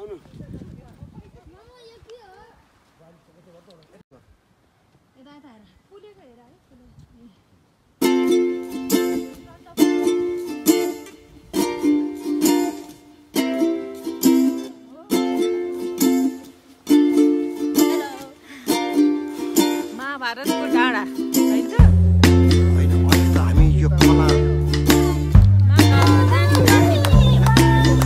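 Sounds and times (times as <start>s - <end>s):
strummed ukulele-like chords: 8.0s - 28.0s.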